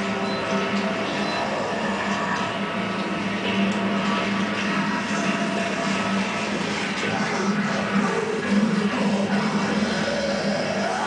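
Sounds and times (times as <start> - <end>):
aquarium pumps humming: 0.0 - 11.0.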